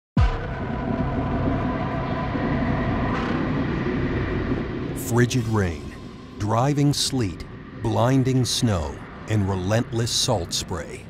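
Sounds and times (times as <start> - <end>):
low rumbling drone: 0.2 - 11.0.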